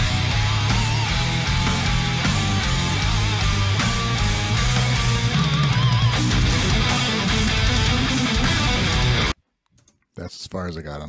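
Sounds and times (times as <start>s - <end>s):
guitar note bending: 0.0s - 9.4s
heavy metal song: 0.0s - 9.4s.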